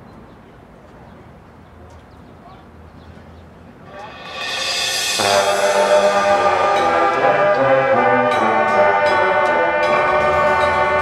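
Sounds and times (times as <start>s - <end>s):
brass section playing sustained chord: 3.9s - 11.0s.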